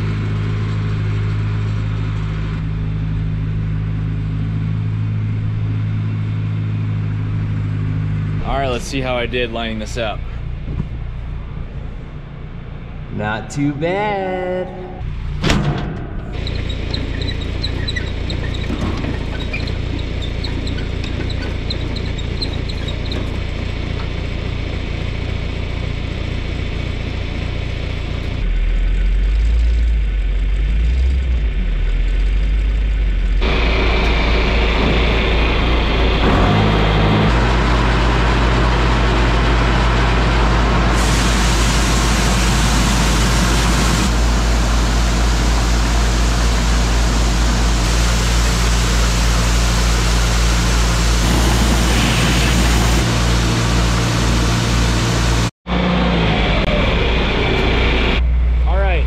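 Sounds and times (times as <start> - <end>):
engines running: 0.0 - 59.0
grain auger running: 16.4 - 27.0, 33.4 - 58.1.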